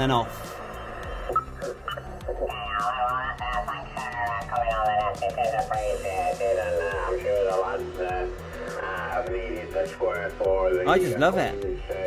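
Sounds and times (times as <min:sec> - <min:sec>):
warbled radio voices: 0:00.0 - 0:12.0.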